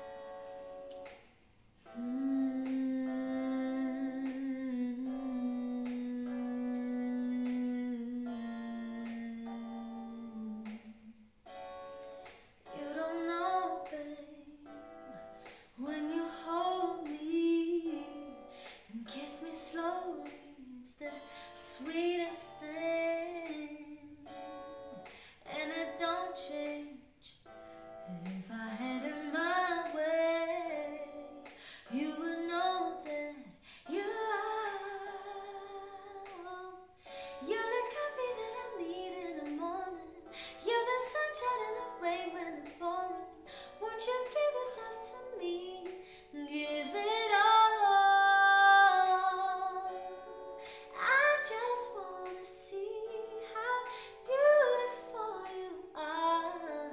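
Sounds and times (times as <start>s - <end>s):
woman singing a ballad: 1.8s - 11.2s, 12.7s - 27.4s, 28.1s - 56.9s.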